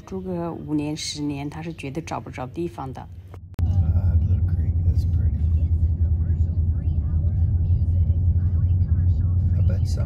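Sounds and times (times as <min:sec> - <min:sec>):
car engine and road noise: 0:01.0 - 0:10.0.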